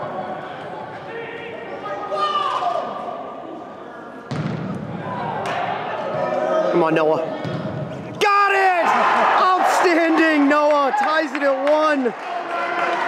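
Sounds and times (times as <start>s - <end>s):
ball kicked thumps: 4.3s - 4.7s.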